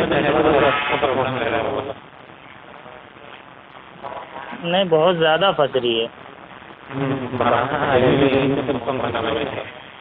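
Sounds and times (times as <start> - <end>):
garbled voice on a call: 0.0 - 10.0.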